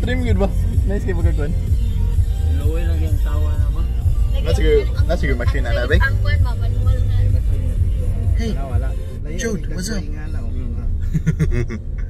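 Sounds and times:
car engine and tyres rumbling inside cabin: 0:00.0 - 0:12.0.

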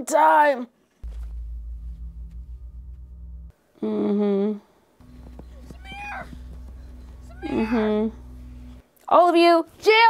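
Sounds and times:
faint steady hum: 0:01.0 - 0:09.8
boy's high-pitched distressed cry: 0:07.4 - 0:08.0.

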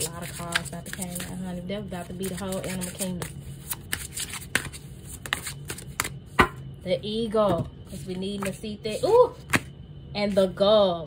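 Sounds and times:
cards being shuffled: 0:00.0 - 0:06.6, 0:07.9 - 0:08.6, 0:09.4 - 0:09.7.

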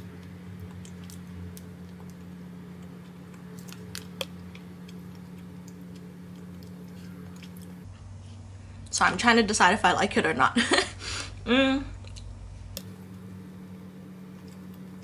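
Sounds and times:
person chewing: 0:00.0 - 0:07.9, 0:14.2 - 0:15.0
steady low hum: 0:00.0 - 0:15.0
wet mouth clicks and squishes: 0:00.2 - 0:07.8.

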